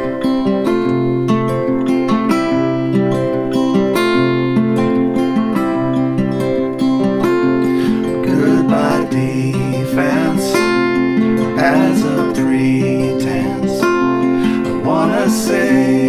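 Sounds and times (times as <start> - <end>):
two acoustic guitars playing: 0.0 - 16.0.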